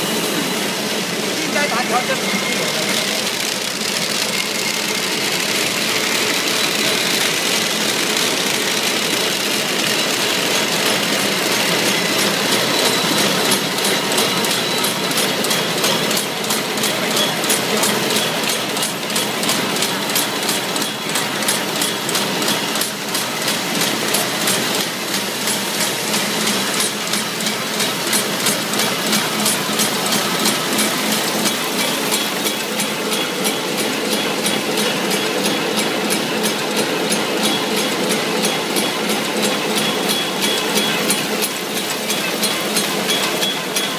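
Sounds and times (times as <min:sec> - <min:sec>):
machine clattering rhythmically: 0:00.0 - 0:43.9.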